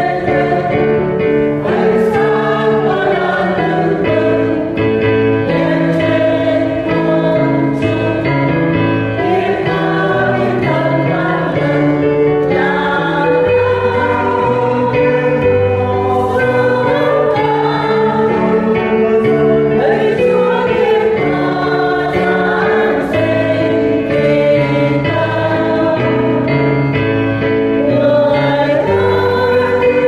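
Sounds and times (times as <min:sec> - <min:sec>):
choir singing a hymn: 0:00.0 - 0:30.0
steady bass accompaniment: 0:00.0 - 0:30.0.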